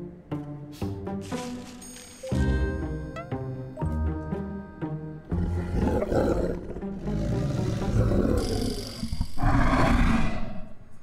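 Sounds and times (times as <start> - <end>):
walrus roaring: 5.3 - 10.7.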